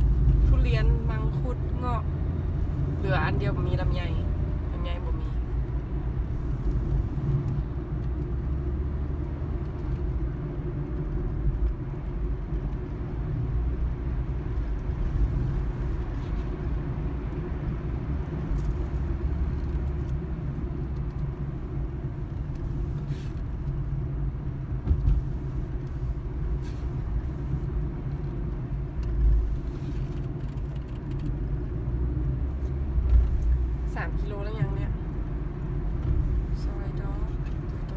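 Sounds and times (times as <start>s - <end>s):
car engine and tyres rumbling: 0.0s - 37.9s.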